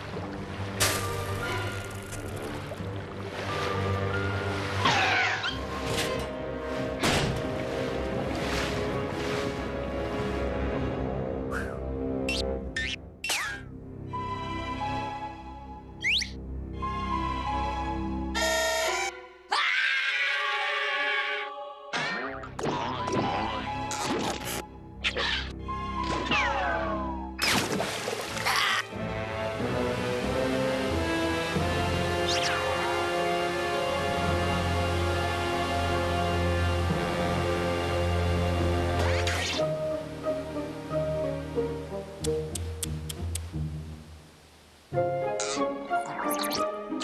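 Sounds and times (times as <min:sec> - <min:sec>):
background music: 0:00.0 - 0:47.0.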